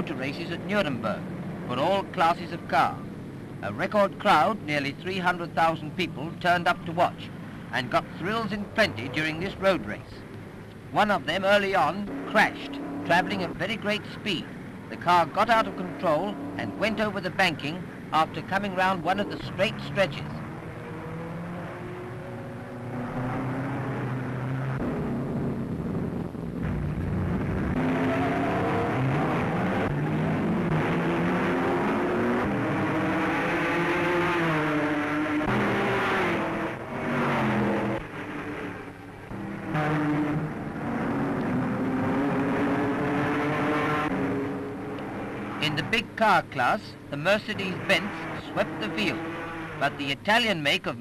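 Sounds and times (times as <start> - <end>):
racing car engines passing: 0.0 - 51.0.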